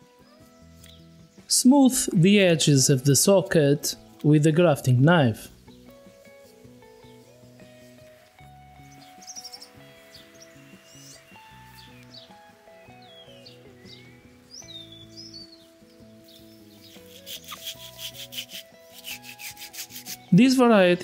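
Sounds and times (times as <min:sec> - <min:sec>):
soft background music: 0:00.0 - 0:21.0
birds chirping: 0:05.2 - 0:21.0
pruning saw cutting wood: 0:16.9 - 0:20.3.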